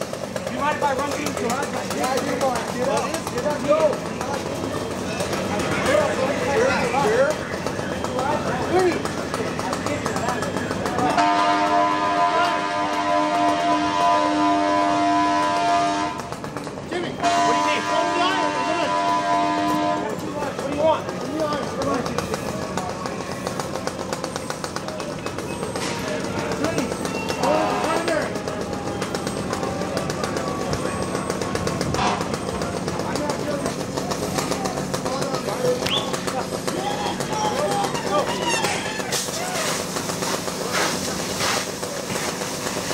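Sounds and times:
distant shouts: 25.2 - 32.7, 35.7 - 39.8.

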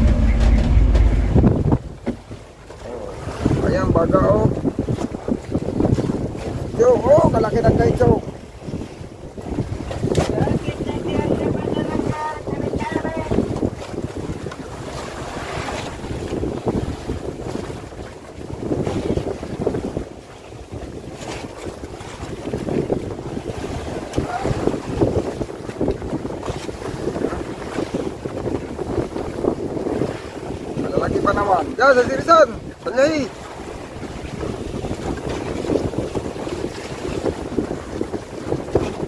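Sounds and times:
water splashing against boat hull: 0.0 - 39.0
wind buffeting microphone: 0.0 - 39.0.

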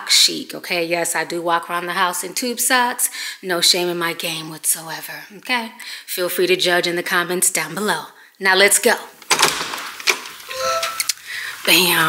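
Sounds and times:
short electronic tone: 10.5 - 11.1.

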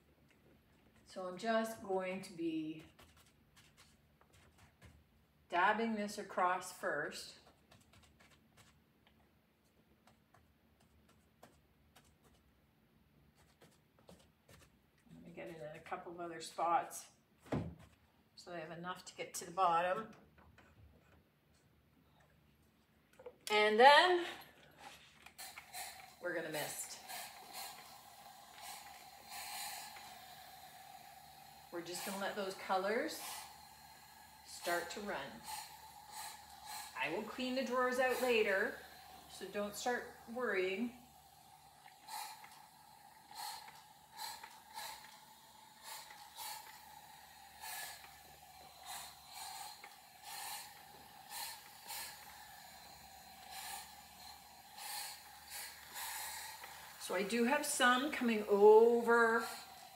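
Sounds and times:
spray bottle squirts: 25.2 - 39.6, 41.2 - 57.0.

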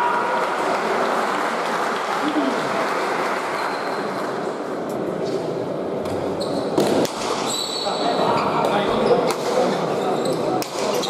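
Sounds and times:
spectators chatting in a hall: 0.0 - 11.0.

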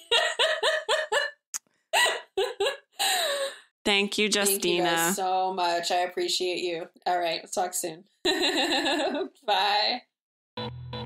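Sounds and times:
person laughing: 0.0 - 1.4, 2.0 - 3.5.

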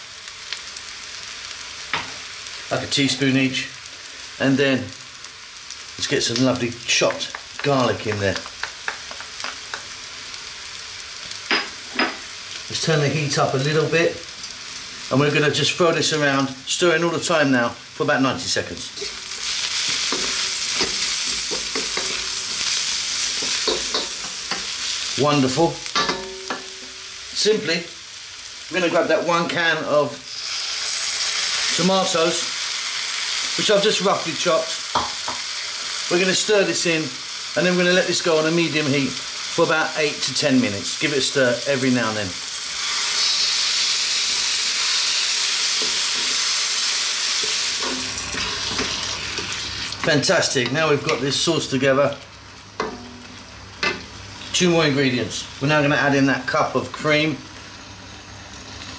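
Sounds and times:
food sizzling in oil: 0.0 - 58.9.

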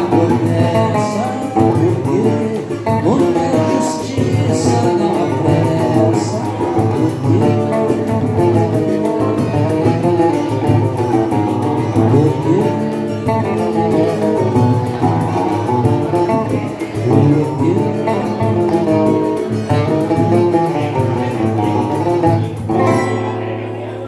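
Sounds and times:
acoustic guitar: 0.0 - 24.0
cavaquinho: 0.0 - 24.0.

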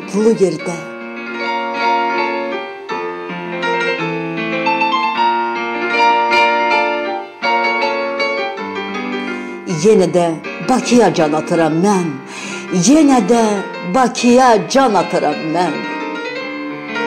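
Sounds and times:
piano music: 0.0 - 17.0.

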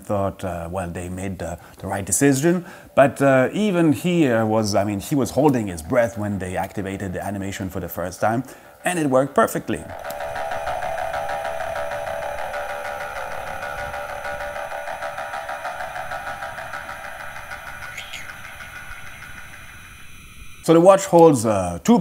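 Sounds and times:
fast mechanical whirr: 9.8 - 20.7.

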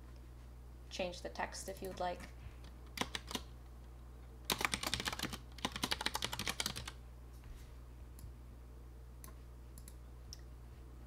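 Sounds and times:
computer keyboard typing: 2.9 - 3.5, 4.5 - 7.0.

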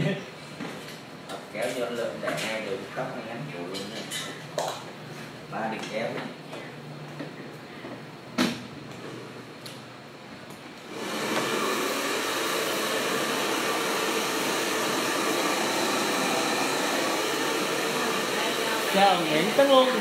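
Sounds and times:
hair dryer running: 10.9 - 20.0.

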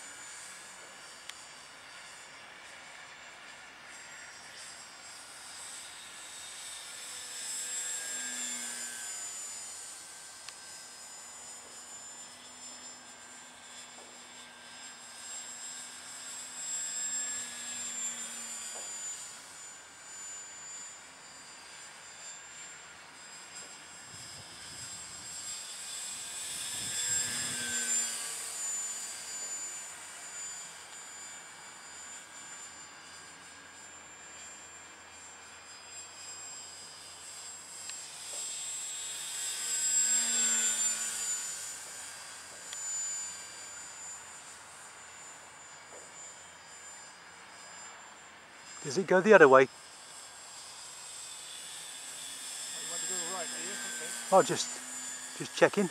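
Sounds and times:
model plane motor whine: 0.0 - 55.9.

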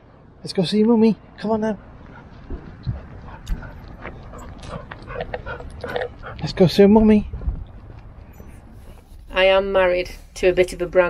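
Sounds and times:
footsteps thumping: 2.2 - 5.3.

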